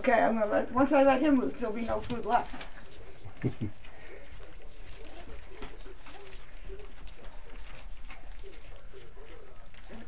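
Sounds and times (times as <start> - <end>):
puppies lapping and smacking food: 2.0 - 10.0.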